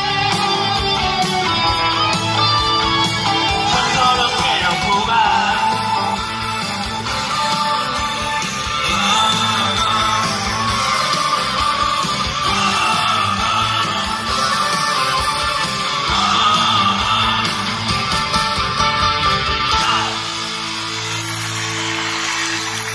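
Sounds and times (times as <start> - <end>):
live rock band playing: 0.0 - 22.9
person singing: 2.9 - 18.1, 19.6 - 20.6.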